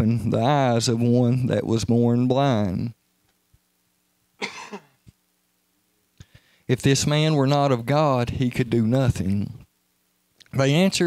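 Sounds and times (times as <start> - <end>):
man coughing: 4.4 - 5.0.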